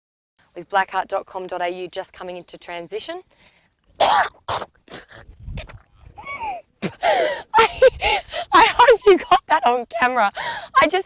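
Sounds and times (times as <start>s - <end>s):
voiced retch: 4.0s - 7.0s
woman coughing and gagging: 4.0s - 8.0s.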